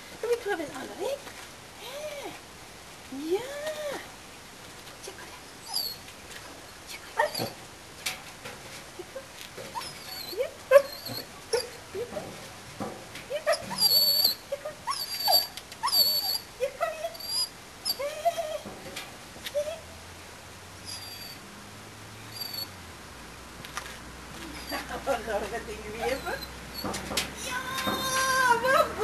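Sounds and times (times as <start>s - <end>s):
dog whining and whimpering: 5.6s - 6.0s, 9.1s - 12.2s, 13.5s - 18.6s, 20.9s - 21.4s, 22.3s - 22.7s, 24.5s - 24.9s, 26.0s - 26.9s
shrill squeaks: 5.6s - 6.0s, 9.7s - 11.8s, 13.5s - 16.5s, 17.1s - 18.0s, 20.9s - 21.4s, 22.3s - 22.7s, 26.0s - 27.0s.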